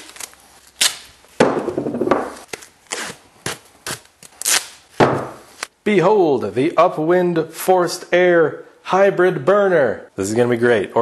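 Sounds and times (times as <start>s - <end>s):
duct tape ripping: 0.0s - 1.2s, 2.4s - 4.9s.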